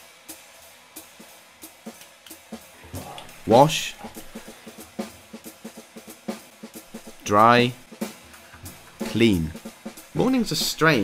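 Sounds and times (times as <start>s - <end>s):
drum-kit beat music: 0.0s - 11.0s.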